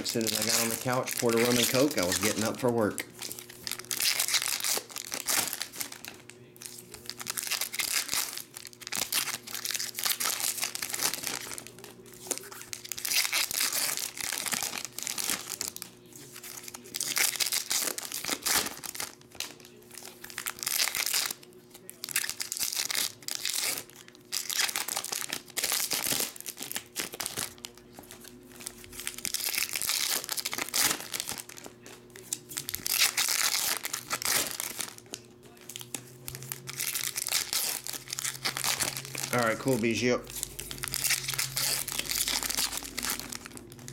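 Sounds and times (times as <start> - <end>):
foil packs tearing and crinkling: 0.0 - 43.9.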